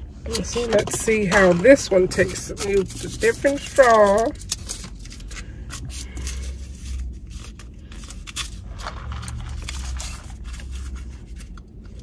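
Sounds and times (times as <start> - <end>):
low rumble: 5.4 - 12.0.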